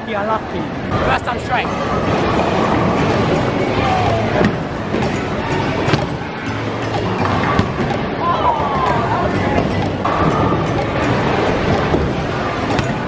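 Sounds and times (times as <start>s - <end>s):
bowling ball rolling: 0.9s - 13.0s
background music: 1.0s - 13.0s
bowling pins clattering: 1.0s - 13.0s.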